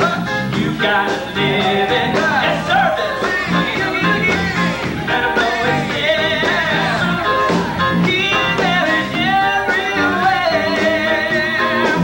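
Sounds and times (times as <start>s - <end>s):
amplified music: 0.0s - 12.0s
men singing into microphones: 0.0s - 12.0s.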